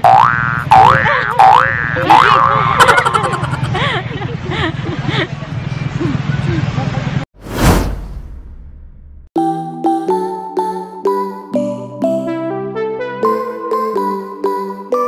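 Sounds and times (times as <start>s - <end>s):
cartoon boing: 0.0s - 3.5s
short whoosh: 7.4s - 9.3s.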